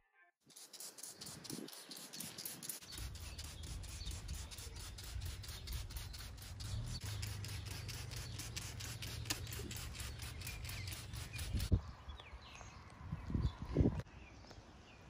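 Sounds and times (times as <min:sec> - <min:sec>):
spray bottle squirts: 0:00.5 - 0:11.7.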